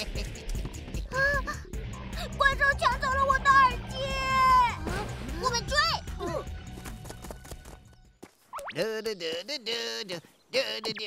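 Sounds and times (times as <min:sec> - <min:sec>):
background music: 0:00.0 - 0:08.7.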